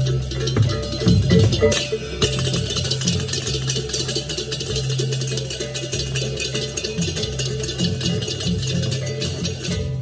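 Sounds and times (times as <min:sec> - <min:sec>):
fast metallic percussion strikes: 0:00.0 - 0:10.0.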